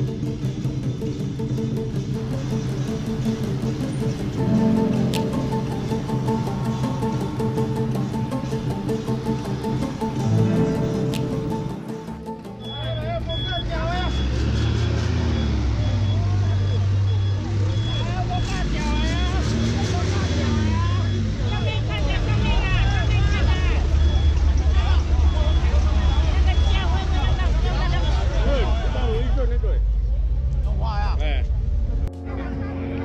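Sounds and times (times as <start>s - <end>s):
truck engine running: 0.0s - 30.6s
crowd talking: 4.3s - 33.0s.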